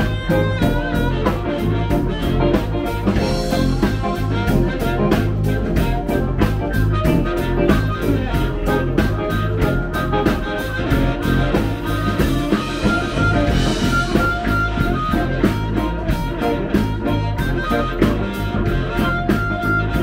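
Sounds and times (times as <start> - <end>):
amplified harmonica: 0.0 - 20.0
blues band playing: 0.0 - 20.0.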